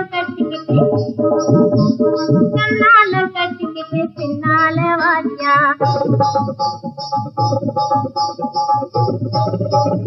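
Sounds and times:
woman singing with vibrato: 0.0s - 1.0s, 2.6s - 5.8s
instrumental accompaniment: 0.0s - 10.0s.

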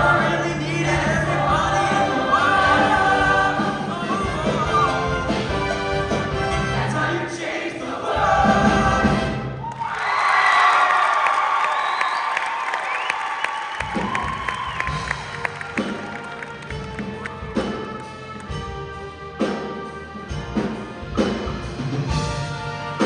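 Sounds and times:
choir singing with band: 0.0s - 9.6s
drums: 0.0s - 10.6s, 11.8s - 23.0s
audience cheering: 9.6s - 17.9s.

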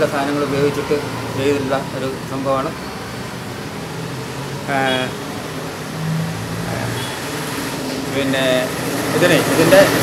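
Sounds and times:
man speaking: 4.7s - 5.2s, 6.6s - 7.2s.

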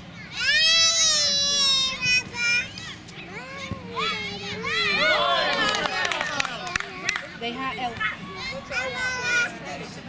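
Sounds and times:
children shouting: 0.2s - 9.7s.

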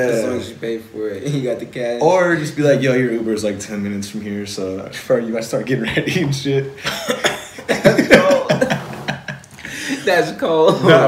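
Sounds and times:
men laughing hard: 6.8s - 10.0s.

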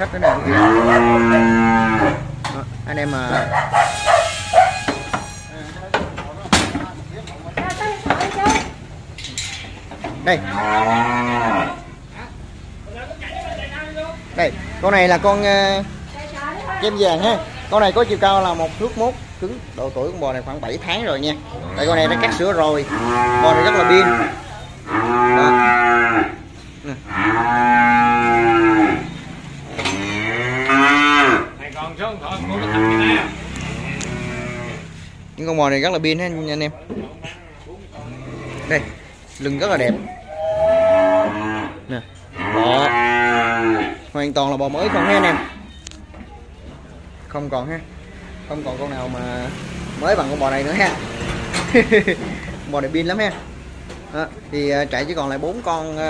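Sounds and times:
cow mooing: 0.2s - 2.4s, 10.3s - 11.9s, 21.6s - 29.2s, 29.8s - 31.5s, 32.4s - 34.9s, 40.2s - 44.0s, 44.7s - 45.6s.

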